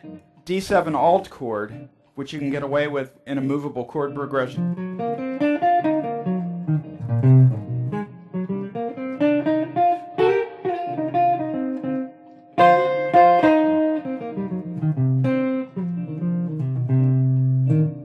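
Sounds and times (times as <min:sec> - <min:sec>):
electric guitar jazz lines: 0:00.0 - 0:18.0.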